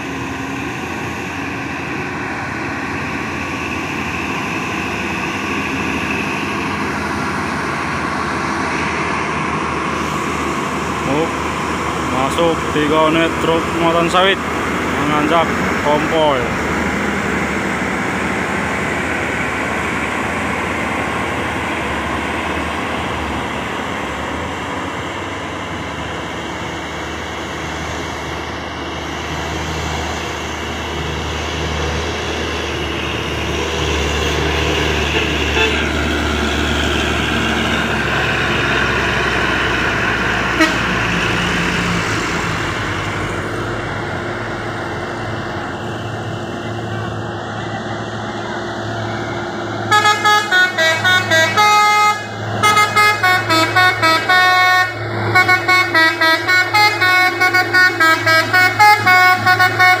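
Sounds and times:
truck diesel engines under load: 0:00.0 - 1:00.0
musical truck horn tune: 0:34.8 - 0:36.1, 0:40.5 - 0:41.1, 0:49.9 - 1:00.0.

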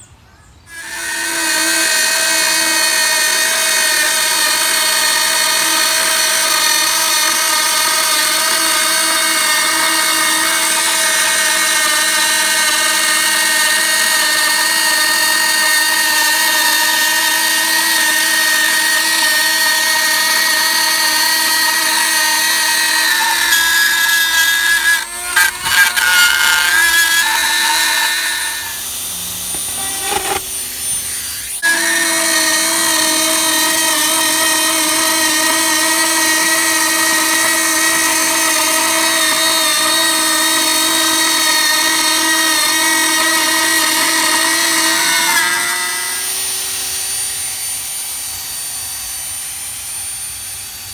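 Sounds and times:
rotary tool cutting plywood: 0:00.7 - 0:50.9.

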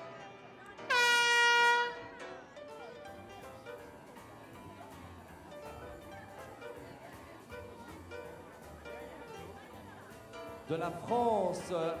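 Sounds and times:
swing dance music: 0:00.0 - 0:12.0
loud horn note bending: 0:00.9 - 0:02.0.

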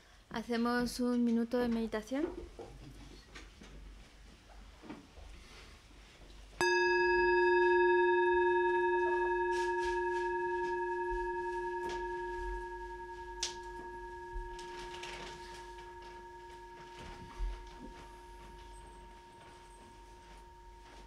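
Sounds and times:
singing bowl ringing: 0:06.6 - 0:21.0.

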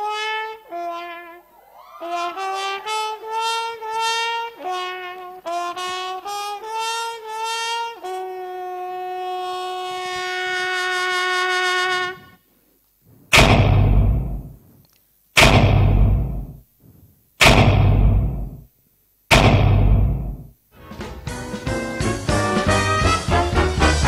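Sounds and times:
horn holding long note: 0:00.0 - 0:12.4, 0:21.6 - 0:24.0
jazz band accented hits: 0:19.3 - 0:24.0.

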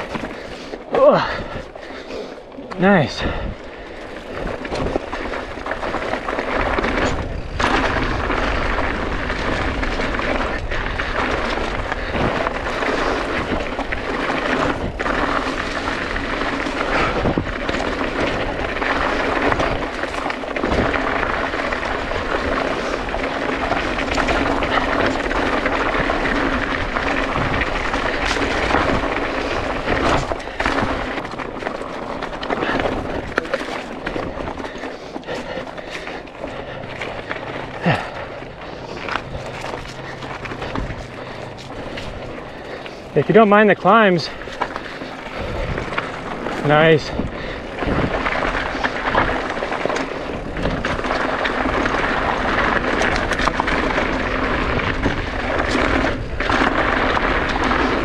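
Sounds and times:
bike rattling over rocks: 0:00.0 - 0:58.0
bike tyres crunching on rocks: 0:00.0 - 0:58.0
wind on microphone: 0:03.1 - 0:20.0, 0:22.0 - 0:31.2, 0:44.3 - 0:58.0.

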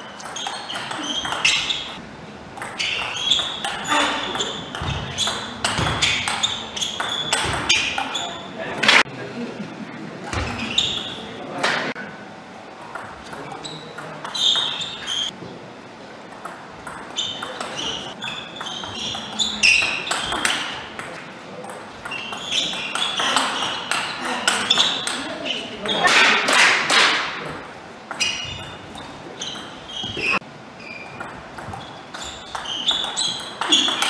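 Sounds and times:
shoes squeaking on floor: 0:00.0 - 0:02.0, 0:02.7 - 0:09.0, 0:10.3 - 0:11.4, 0:13.5 - 0:15.4, 0:17.1 - 0:20.9, 0:22.0 - 0:26.2, 0:28.1 - 0:34.0.

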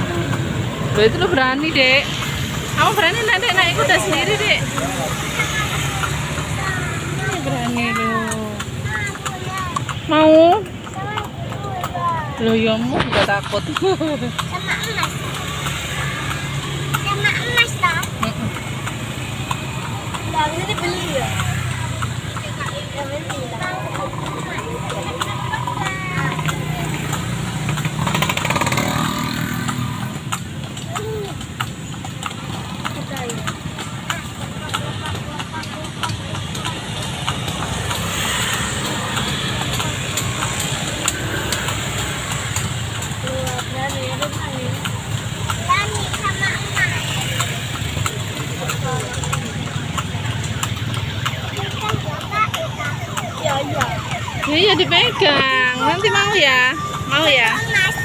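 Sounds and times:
cart clicks and knocks: 0:00.0 - 0:58.0
horse hooves: 0:00.0 - 0:58.0
motorcycle and car engines: 0:00.0 - 0:58.0
voices: 0:00.0 - 0:58.0.

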